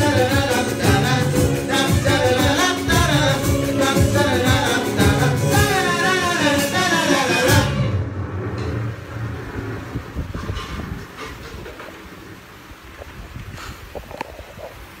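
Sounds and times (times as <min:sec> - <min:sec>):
live rock band playing: 0:00.0 - 0:07.9.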